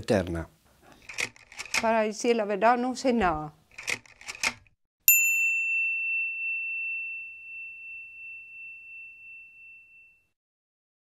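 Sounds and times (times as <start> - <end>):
high bell-like chime: 5.1 - 10.4.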